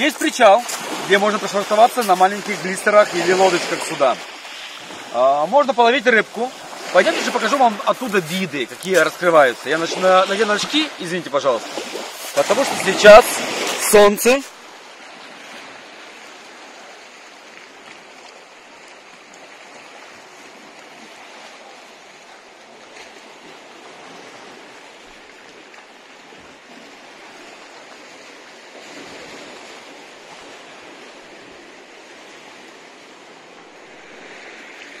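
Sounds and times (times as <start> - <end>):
waves lapping on rocky shore: 0.0 - 35.0.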